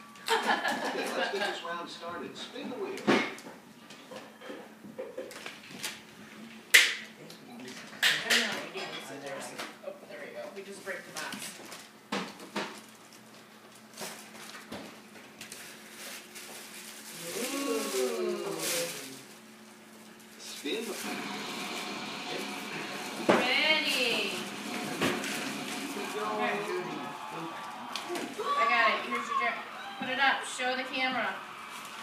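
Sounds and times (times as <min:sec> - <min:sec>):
paper rustling and crinkling: 0:12.6 - 0:19.4
women talking: 0:23.4 - 0:24.5, 0:28.4 - 0:31.4.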